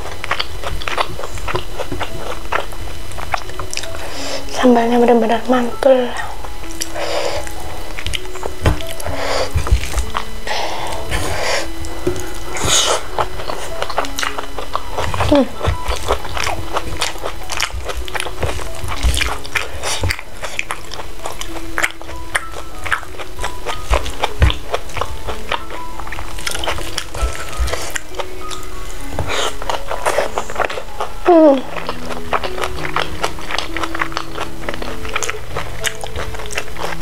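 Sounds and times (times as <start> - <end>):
chewing: 0.0 - 4.6, 6.1 - 37.0
soft background music: 0.0 - 37.0
fingers working rice on plate: 6.2 - 37.0.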